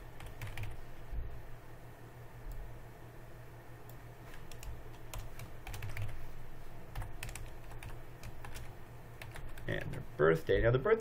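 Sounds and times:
typing on computer keyboard: 0.2s - 0.8s, 4.5s - 6.2s, 7.0s - 10.0s.

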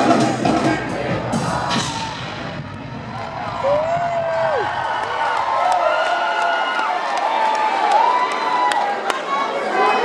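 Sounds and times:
amplified rap vocals: 0.0s - 2.6s
crowd cheering: 1.3s - 10.0s
long crowd shout: 3.0s - 10.0s.

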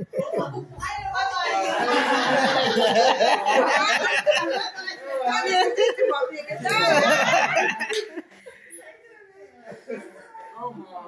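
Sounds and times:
women laughing: 1.6s - 8.4s.

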